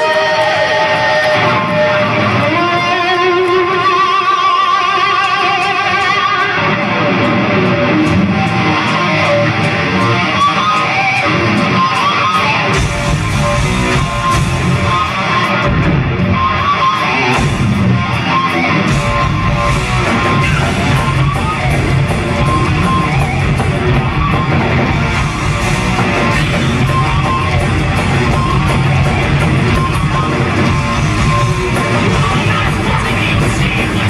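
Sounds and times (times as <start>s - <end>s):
electric guitars: 0.0s - 34.0s
heavy metal band playing: 0.0s - 34.0s.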